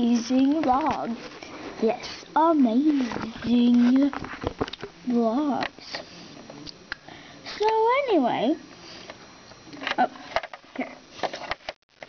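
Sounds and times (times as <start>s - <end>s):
child speaking: 0.0s - 1.2s, 1.8s - 4.2s, 5.1s - 5.7s.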